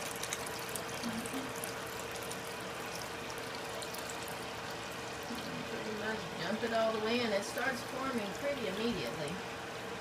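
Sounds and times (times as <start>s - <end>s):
water pouring and splashing into tub: 0.0s - 5.6s.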